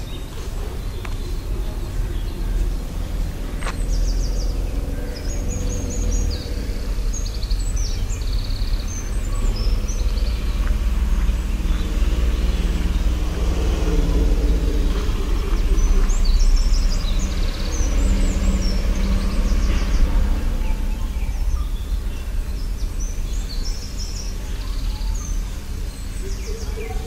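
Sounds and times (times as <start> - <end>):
loud steady low rumble: 0.0 - 27.0
small birds chirping and trilling: 0.0 - 27.0.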